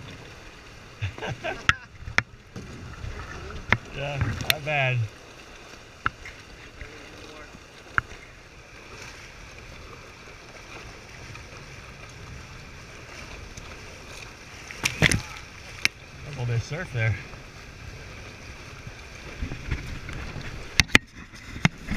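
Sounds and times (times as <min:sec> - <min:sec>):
rushing water and wind: 0:00.0 - 0:21.9.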